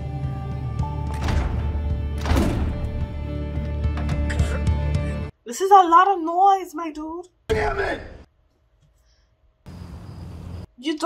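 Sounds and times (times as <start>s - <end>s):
tense soundtrack music: 0.0s - 5.4s.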